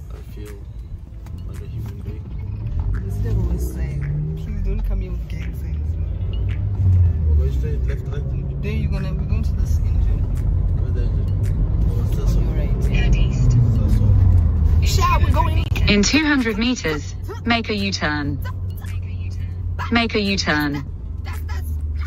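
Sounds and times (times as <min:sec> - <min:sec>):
car engine and tyres rumbling: 0:00.0 - 0:22.0.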